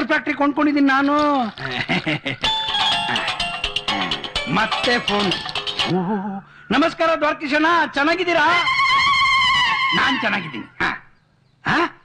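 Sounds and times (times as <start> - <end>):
mobile phone ringtone: 2.4 - 5.9
voices: 3.9 - 12.0.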